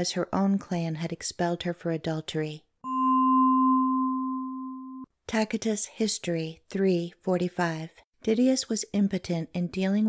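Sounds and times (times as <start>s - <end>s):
steady ringing tone: 2.9s - 5.0s.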